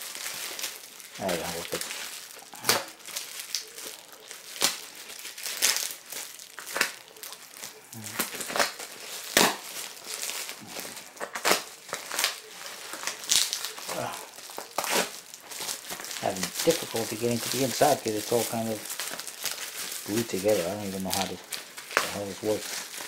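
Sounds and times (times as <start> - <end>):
padded mailer crinkling and crackling: 0.0 - 23.0.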